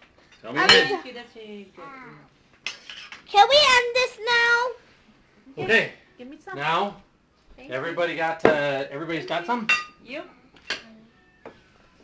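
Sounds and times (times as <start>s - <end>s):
tableware clinking: 0.2s - 1.1s, 8.4s - 8.8s, 9.6s - 10.0s, 10.6s - 11.6s.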